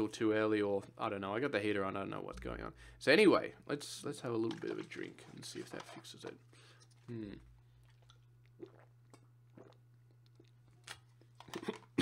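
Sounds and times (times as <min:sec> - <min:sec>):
person swallowing: 0:08.5 - 0:09.8.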